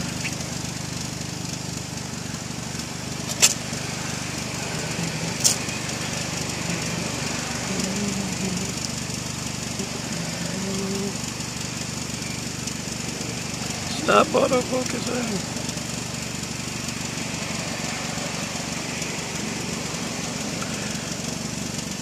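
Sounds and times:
engine humming: 0:00.0 - 0:22.0
sharp clicks: 0:03.2 - 0:03.7, 0:05.3 - 0:06.0.

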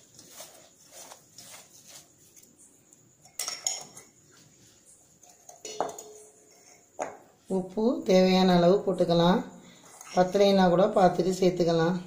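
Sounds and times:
metal pot clinking: 0:03.2 - 0:04.1, 0:05.3 - 0:07.2.

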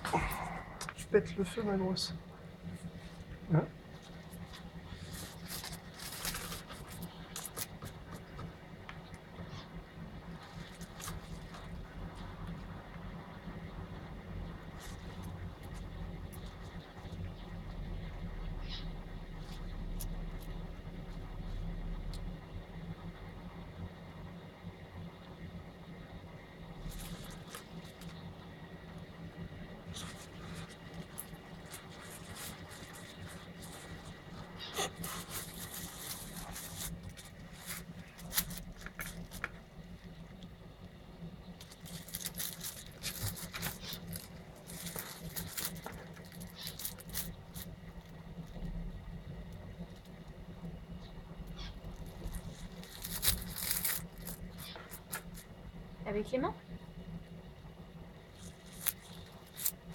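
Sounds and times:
steady low hum: 0:00.0 - 0:59.9
rustling and scraping in terrarium: 0:02.6 - 0:22.3, 0:26.7 - 0:55.6, 0:58.2 - 0:59.9.

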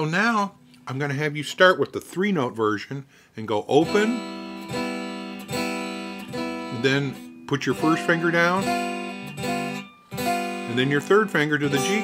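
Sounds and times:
electric guitar chord strummed: 0:03.8 - 0:12.0.

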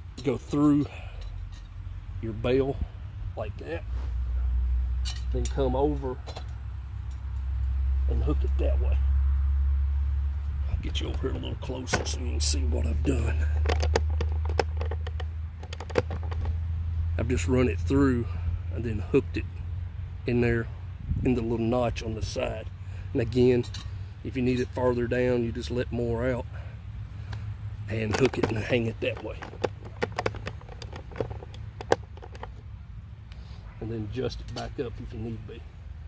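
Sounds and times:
steady low rumble: 0:00.0 - 0:36.0
handling clicks and taps: 0:10.8 - 0:16.6, 0:28.0 - 0:32.7.

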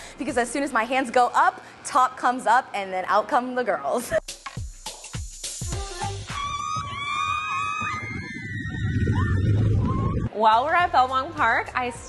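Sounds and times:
riders screaming: 0:06.4 - 0:10.3
wind buffeting the microphone: 0:08.6 - 0:10.4.

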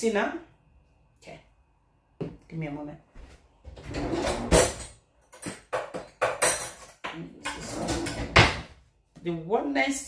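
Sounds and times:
metal cutlery clattering: 0:04.2 - 0:08.4.

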